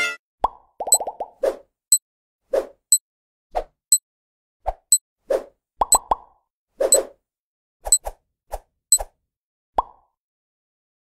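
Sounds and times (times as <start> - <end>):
cartoon pops and bloops: 0.4 - 1.4, 5.8 - 6.4, 9.8 - 10.1.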